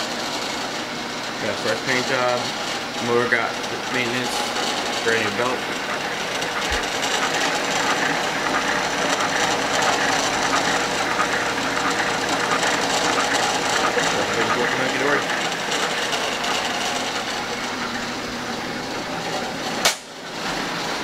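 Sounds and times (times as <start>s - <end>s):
dough roller machine whirring: 0.0s - 21.0s.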